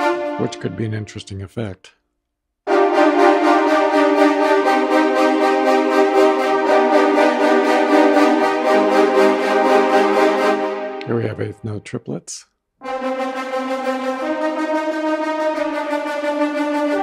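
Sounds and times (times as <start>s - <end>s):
horn ensemble rapid repeated chord: 0.0s - 1.2s, 2.7s - 11.5s, 12.8s - 17.0s.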